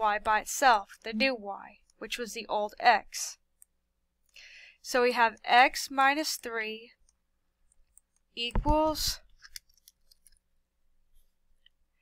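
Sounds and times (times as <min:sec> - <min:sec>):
person speaking: 0:00.0 - 0:03.4, 0:08.4 - 0:09.3.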